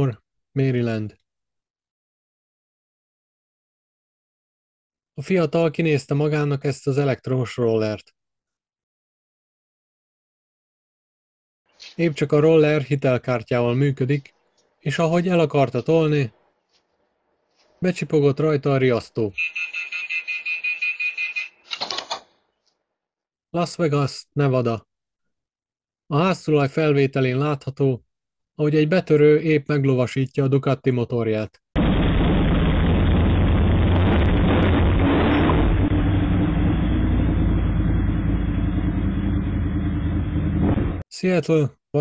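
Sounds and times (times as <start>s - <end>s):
scooter alarm beeping: 19.4s - 21.6s
motorcycle engine running: 34.5s - 41.0s.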